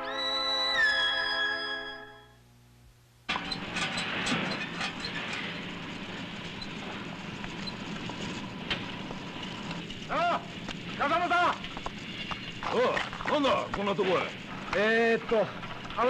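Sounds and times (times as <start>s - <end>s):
steady background noise: 0.0s - 16.0s.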